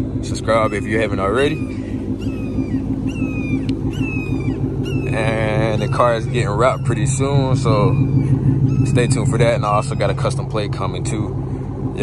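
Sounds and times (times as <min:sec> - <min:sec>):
car engine idling: 0:00.0 - 0:12.0
high falling whistle-like calls: 0:05.8 - 0:10.6.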